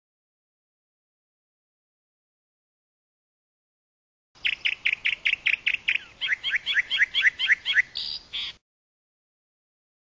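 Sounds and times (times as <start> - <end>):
songbird singing: 4.4 - 8.6.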